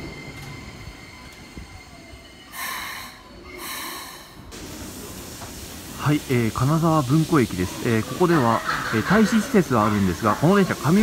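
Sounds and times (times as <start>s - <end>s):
electric train rolling to a stop: 0.0s - 6.0s
air brake hiss: 2.5s - 5.8s.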